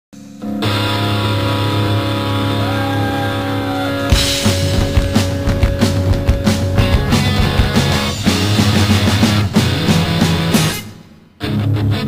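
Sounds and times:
electric guitar sustained chord: 0.2s - 5.7s.

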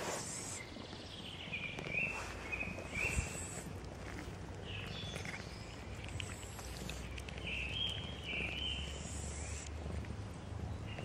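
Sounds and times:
cats chewing wet food: 0.6s - 11.0s.

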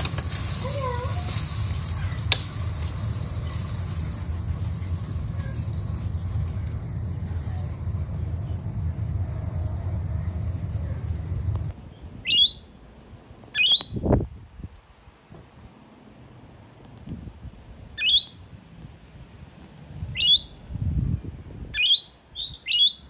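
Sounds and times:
lower falling sound: 0.0s - 11.7s
rushing noise with rumble: 0.0s - 11.8s.

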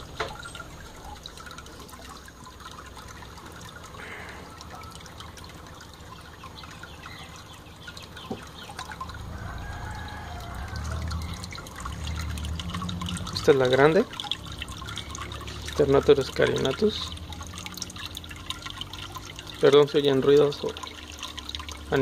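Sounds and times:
small water splashes: 0.0s - 22.0s
water trickling and dripping: 0.0s - 22.0s.

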